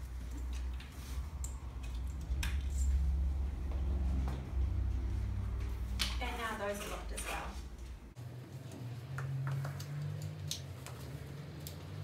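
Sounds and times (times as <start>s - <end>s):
steady low rumble: 0.0s - 6.8s, 7.4s - 8.2s.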